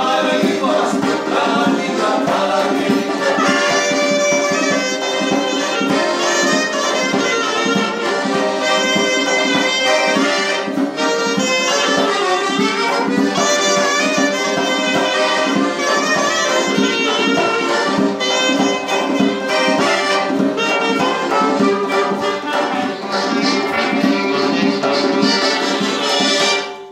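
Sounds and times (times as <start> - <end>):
strummed acoustic guitar: 0.0 - 26.6
accordion chords: 0.0 - 26.9
clarinet melody: 0.0 - 26.9.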